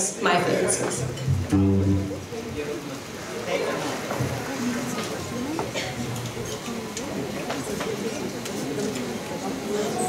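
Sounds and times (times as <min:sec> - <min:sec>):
low voices talking: 0:00.0 - 0:10.0.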